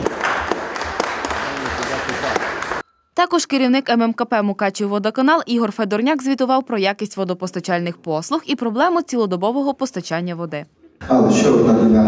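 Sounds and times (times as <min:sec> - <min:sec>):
people applauding: 0:00.0 - 0:02.8.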